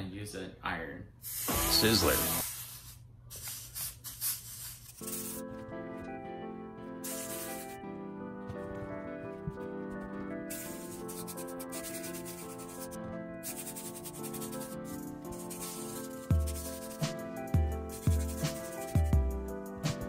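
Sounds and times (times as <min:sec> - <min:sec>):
steam iron hissing: 0:01.3 - 0:02.8
background music of sustained notes: 0:05.0 - 0:20.0.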